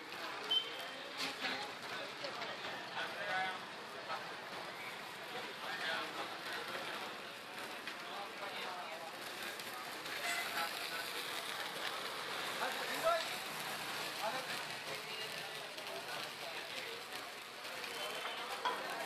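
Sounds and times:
background chatter: 0.0 - 19.0
food sizzling on a griddle: 0.0 - 19.0.

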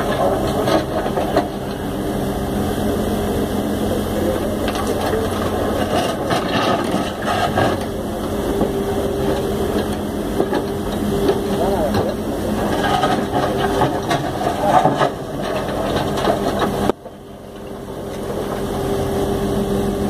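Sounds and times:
diesel engine running: 0.0 - 20.0.

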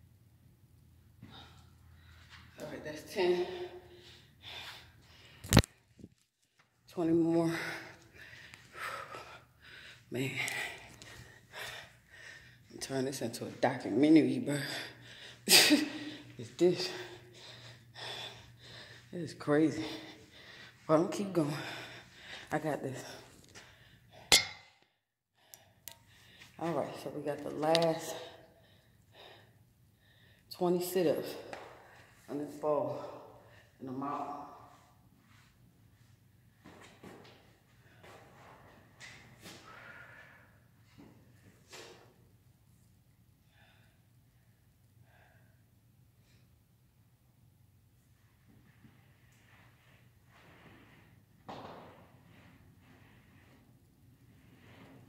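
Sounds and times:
person breathing hard: 7.6 - 12.7, 14.6 - 19.1, 19.8 - 24.3.

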